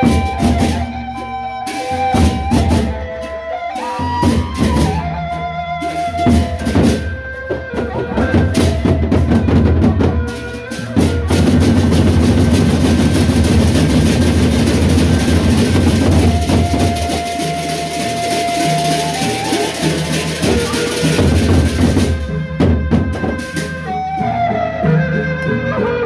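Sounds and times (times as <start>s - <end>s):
barrel drums beaten with sticks: 0.0s - 3.2s, 5.8s - 24.0s.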